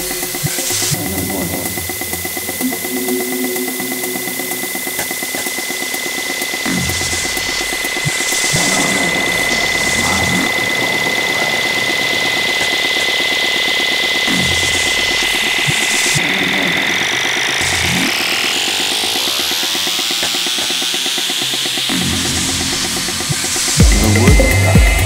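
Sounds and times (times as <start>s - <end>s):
techno music: 0.0s - 25.0s.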